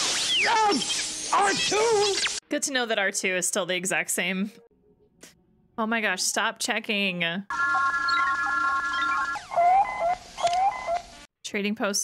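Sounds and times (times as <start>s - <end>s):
electronic computer tones: 7.5s - 11.0s
rising warbling tones: 7.5s - 11.0s.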